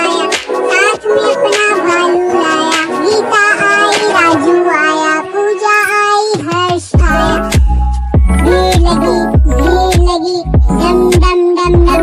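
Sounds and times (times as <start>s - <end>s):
child-like voice singing: 0.0s - 7.7s, 8.3s - 12.0s
music backing: 0.0s - 12.0s.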